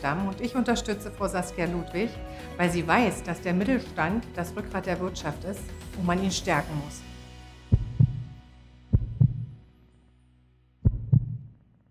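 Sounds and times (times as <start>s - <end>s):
heartbeat thumps: 7.7s - 9.6s, 10.8s - 11.5s.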